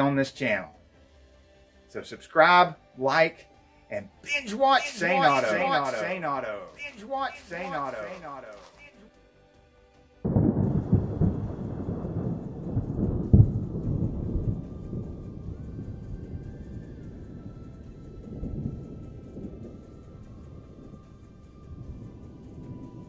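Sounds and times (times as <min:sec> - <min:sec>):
fireworks booming and crackling: 0:04.8 - 0:09.0.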